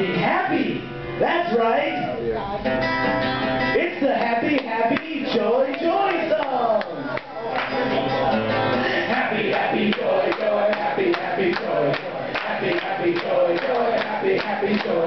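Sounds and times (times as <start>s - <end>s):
acoustic guitar strumming: 0.0s - 15.0s
men singing and shouting: 4.1s - 15.0s.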